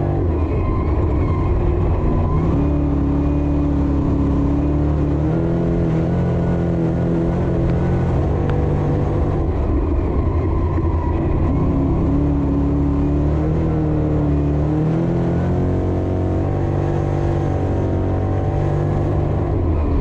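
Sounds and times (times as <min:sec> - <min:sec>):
racing engine revving: 0:00.0 - 0:20.0.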